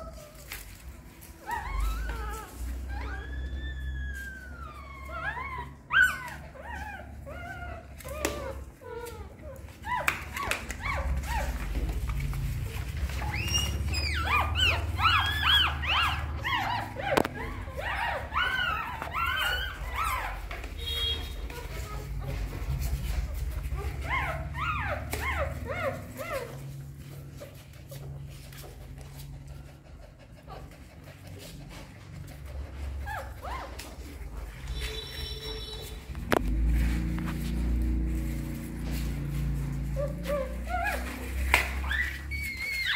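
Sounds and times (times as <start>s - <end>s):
puppies crying in squeaks: 0.0s - 42.9s
low steady rumble: 10.7s - 42.9s.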